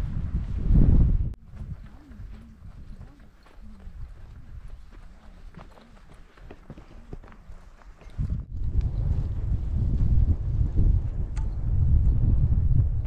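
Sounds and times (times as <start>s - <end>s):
wind rushing on microphone: 0.0s - 5.7s, 8.0s - 13.0s
footsteps on trail: 1.4s - 10.3s.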